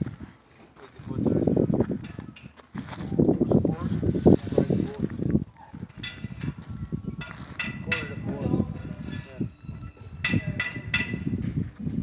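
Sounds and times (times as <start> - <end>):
people talking: 0.8 - 1.6, 7.8 - 9.5
sharp metallic clinks: 7.2 - 11.4.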